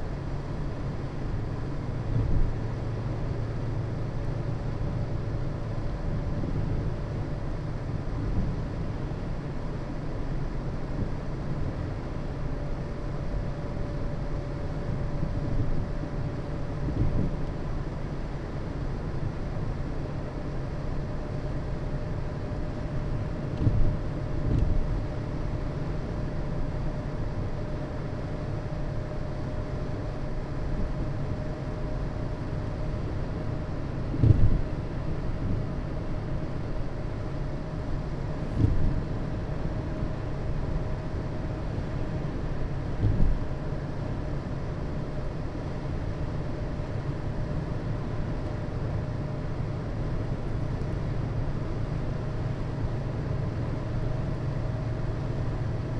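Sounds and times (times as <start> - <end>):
engine and tyre rumble: 0.0 - 55.9
car bumps: 34.1 - 34.6, 38.5 - 39.1, 42.9 - 43.5.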